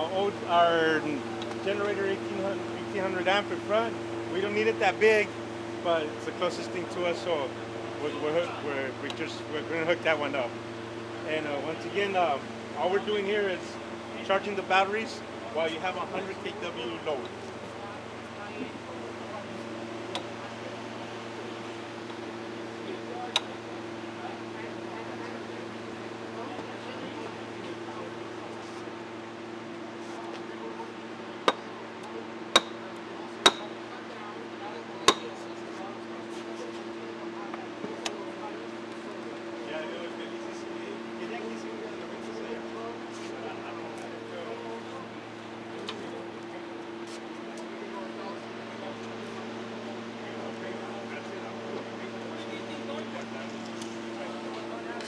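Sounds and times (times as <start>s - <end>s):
electrical equipment humming: 0.0s - 55.0s.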